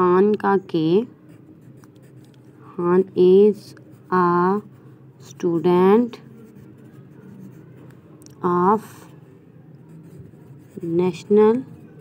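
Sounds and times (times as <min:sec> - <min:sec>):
faint low hum: 0:00.0 - 0:12.0
pencil rustling on paper: 0:01.0 - 0:09.1, 0:09.8 - 0:12.0.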